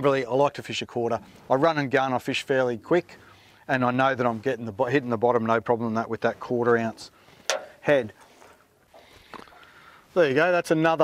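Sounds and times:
soft wet handling sounds: 6.2 - 10.4.

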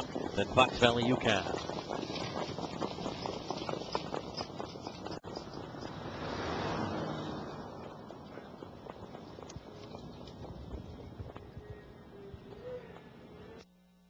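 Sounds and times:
horse hoofbeats on dirt: 0.0 - 13.6.

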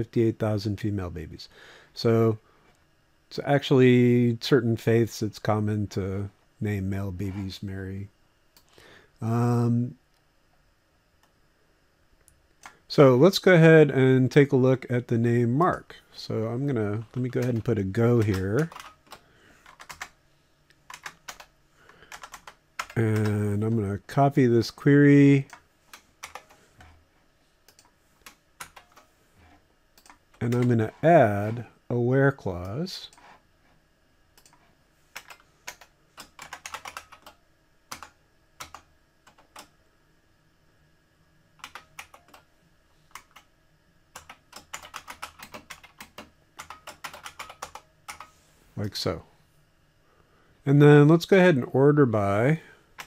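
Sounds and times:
computer keyboard keys clicking: 17.2 - 20.1, 20.9 - 21.5, 22.1 - 23.4, 25.9 - 26.6, 35.2 - 39.7, 41.6 - 42.4, 44.2 - 48.3.

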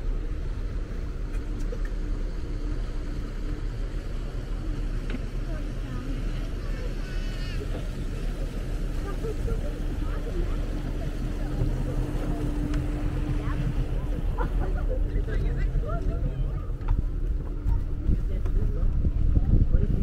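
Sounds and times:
outboard motor humming: 0.0 - 20.0.

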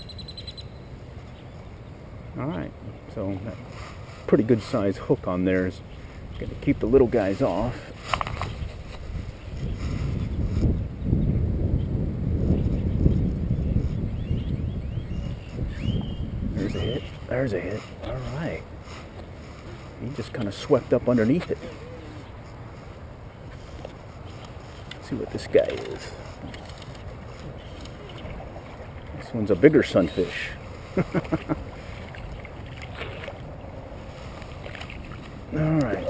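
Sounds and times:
wind buffeting microphone: 5.5 - 36.0.

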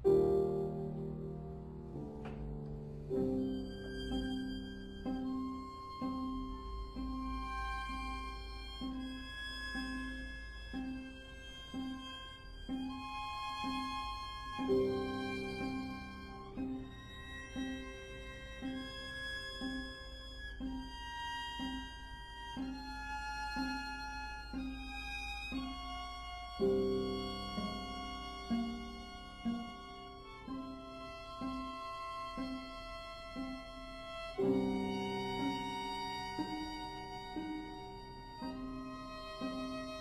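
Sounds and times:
repeated low piano note: 0.0 - 20.8
held high string notes: 0.0 - 40.0.

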